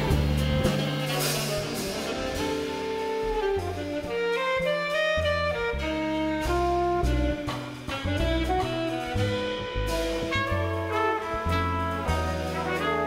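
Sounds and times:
big band jazz: 0.0 - 13.0
saxophones: 0.0 - 13.0.

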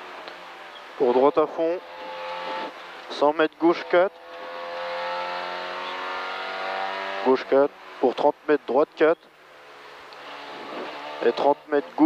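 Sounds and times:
rally car engine at high revs: 0.0 - 9.0, 9.6 - 12.0.

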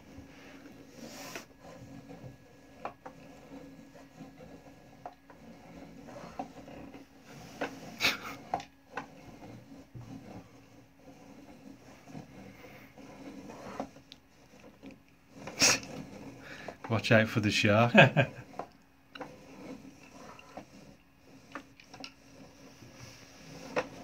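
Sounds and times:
wooden mechanism rubbing and creaking: 0.0 - 24.0.

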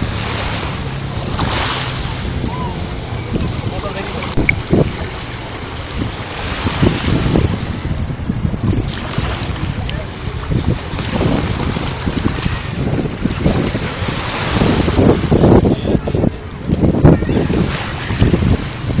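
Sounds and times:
wind buffeting microphone: 0.0 - 19.0
small waves splashing on rocks: 1.2 - 2.4, 3.3 - 7.6, 8.7 - 15.6.

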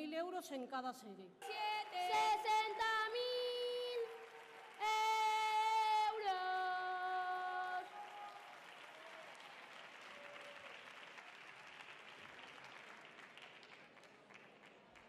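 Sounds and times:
faint audience applause: 1.4 - 15.0.

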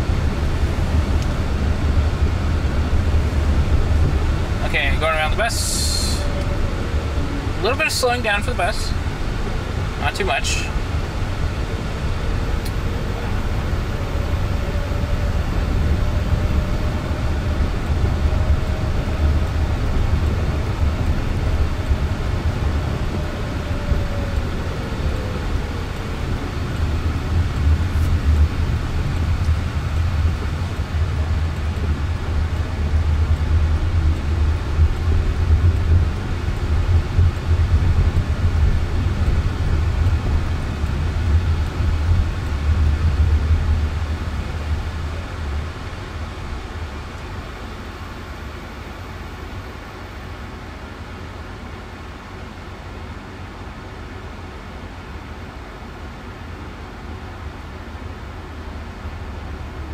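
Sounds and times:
road and tyre noise in car: 0.0 - 59.9.

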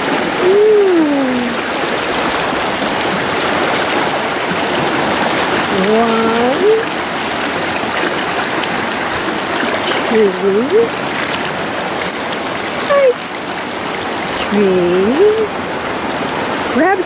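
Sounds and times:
river water rushing over rocks: 0.0 - 17.0.

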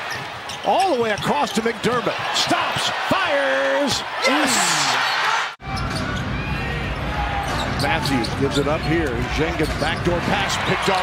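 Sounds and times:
murmur of arena crowd: 0.0 - 11.0
commentator speaking: 0.7 - 5.0.

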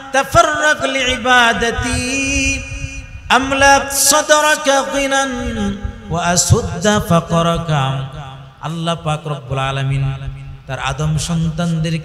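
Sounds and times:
man chanting a sermon: 0.0 - 12.0.

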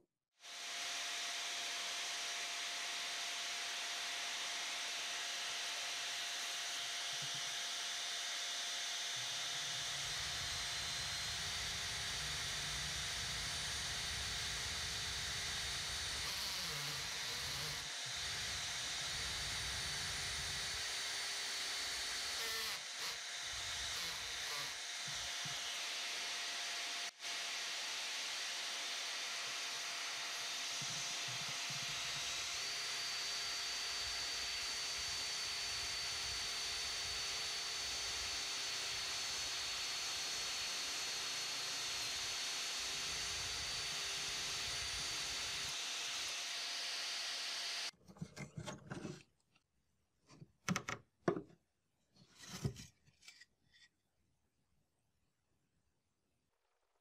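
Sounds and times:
cordless drill boring into wood: 0.4 - 48.0.

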